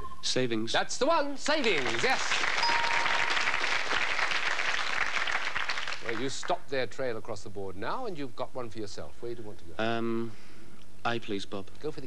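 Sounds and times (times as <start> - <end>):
studio audience applauding: 1.4 - 6.6.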